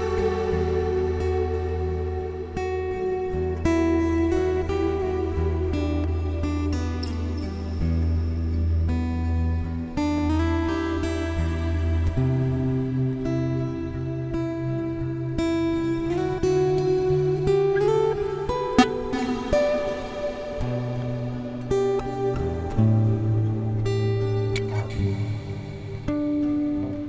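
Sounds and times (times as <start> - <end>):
fingerpicked acoustic guitar: 0.0 - 27.0
percussive tap on guitar: 18.8 - 19.4.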